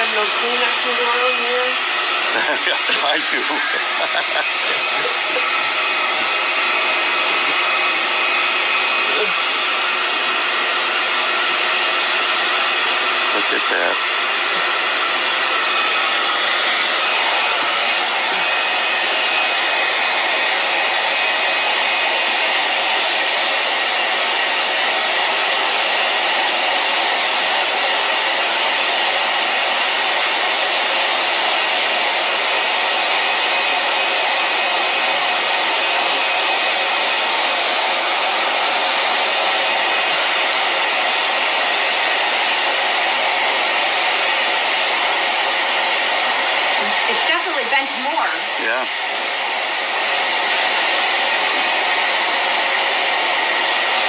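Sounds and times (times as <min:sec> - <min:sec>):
fan blowing air: 0:00.0 - 0:31.1.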